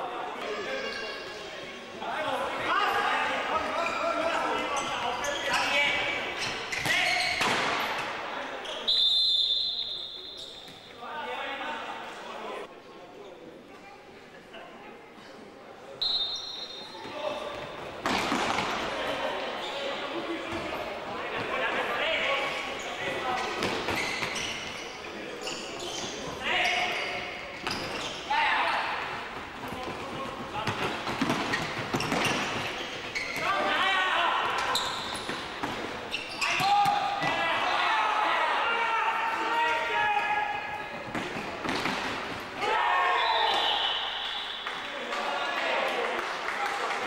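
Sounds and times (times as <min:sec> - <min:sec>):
players and spectators shouting: 0:36.3 - 0:40.9, 0:42.6 - 0:46.0.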